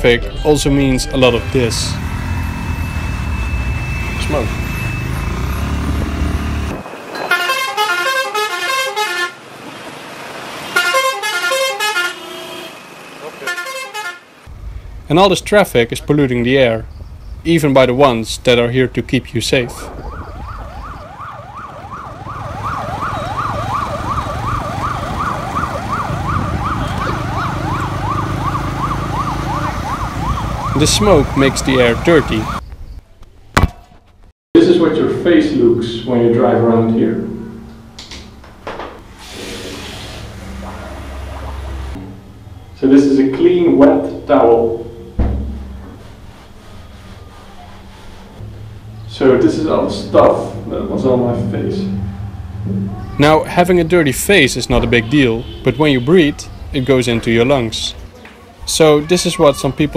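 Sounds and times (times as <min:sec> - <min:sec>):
traffic engines rumbling: 0:00.0 - 0:33.2, 0:34.6 - 0:59.9
emergency siren yelping: 0:00.2 - 0:09.2, 0:19.6 - 0:32.6, 0:40.2 - 0:42.8, 0:51.8 - 0:53.4, 0:58.6 - 0:59.9.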